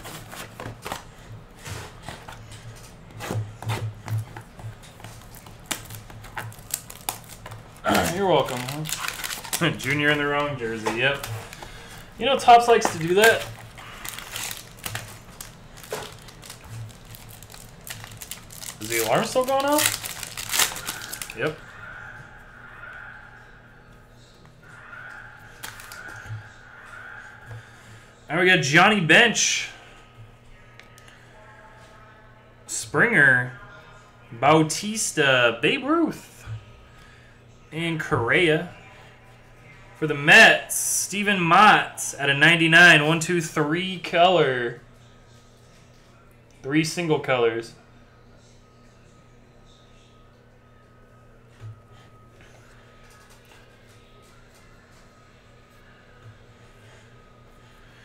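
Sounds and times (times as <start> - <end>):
cardboard and plastic wrap rustling: 0.0 - 21.6
faint harsh alarm tone: 20.9 - 32.6.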